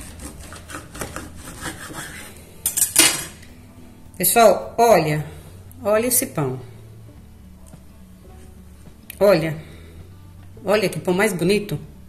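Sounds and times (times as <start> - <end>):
knife sawing through loaf: 0.0 - 2.4.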